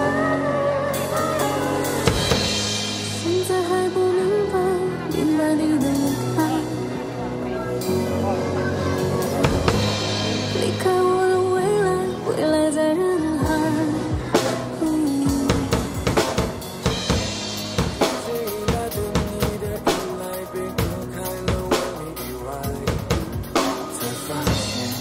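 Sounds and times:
drum kit playing: 0.0s - 6.9s, 7.8s - 12.1s, 13.4s - 25.0s
pop song through loudspeaker: 0.0s - 25.0s.

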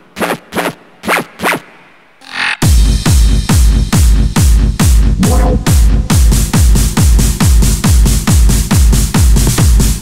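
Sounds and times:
acid synth notes: 5.1s - 6.5s.

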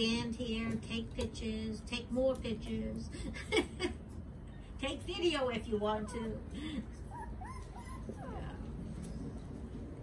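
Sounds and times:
puppies whimpering: 5.9s - 9.6s.

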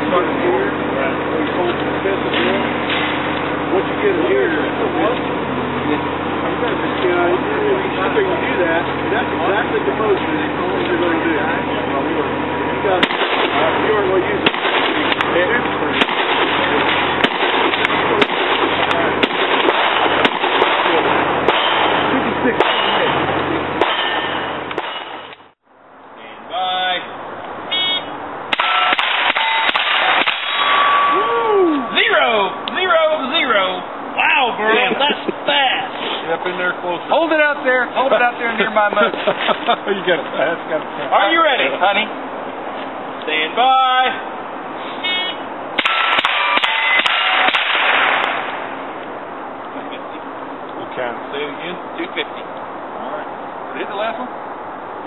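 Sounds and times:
rifle shots at steel targets: 13.0s - 25.4s, 28.5s - 31.1s, 45.8s - 48.8s.

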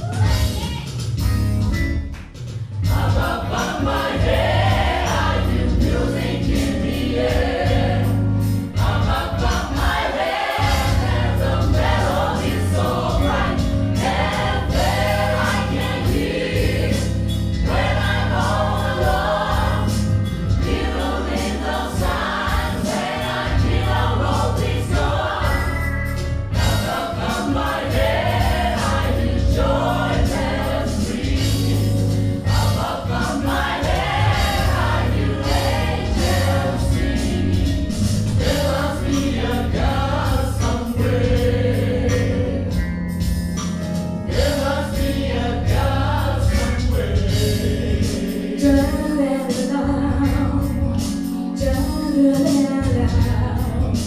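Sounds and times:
steady beat: 0.0s - 49.2s
strong bass line: 2.8s - 48.9s
gospel choir singing: 2.8s - 54.0s.

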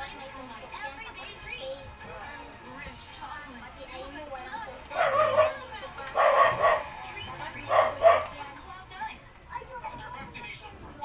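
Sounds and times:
dog barking: 4.9s - 8.4s.

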